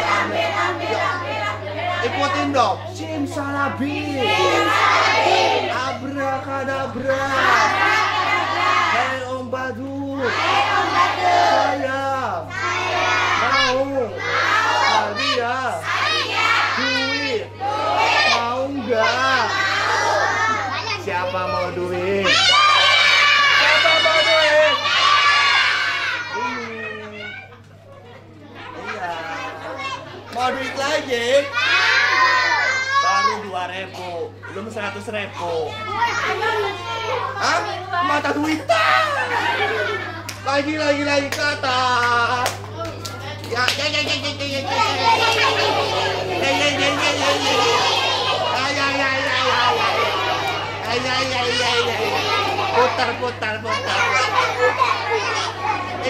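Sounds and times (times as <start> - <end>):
young children shouting: 4.0 - 6.0, 7.0 - 9.2, 10.2 - 27.7, 28.5 - 40.4, 44.5 - 56.0
man leading chant: 46.2 - 50.0.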